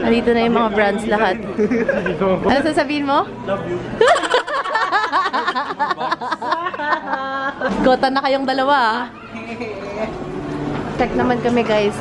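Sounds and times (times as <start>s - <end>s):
people talking in background: 0.0s - 12.0s.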